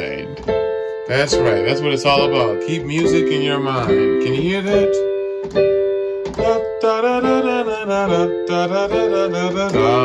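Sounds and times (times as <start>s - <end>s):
electronic keyboard piano chords: 0.0s - 10.0s.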